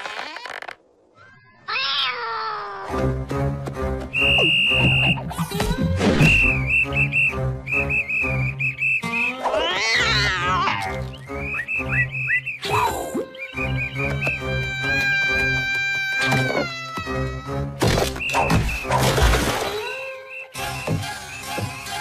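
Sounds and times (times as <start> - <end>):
cartoon cat yowling: 1.5 - 3.0, 9.5 - 10.9, 14.5 - 17.6
cartoon music with whistle melody: 3.8 - 22.0.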